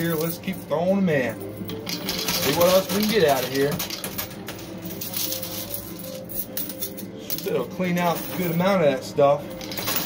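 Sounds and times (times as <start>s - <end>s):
background music: 0.0s - 10.0s
coins clinking in coin pusher: 0.0s - 10.0s.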